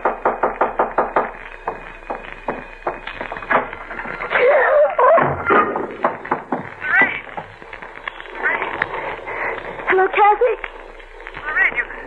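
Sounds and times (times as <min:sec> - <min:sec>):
sharp knocks: 0:00.0 - 0:03.7, 0:05.1 - 0:07.5.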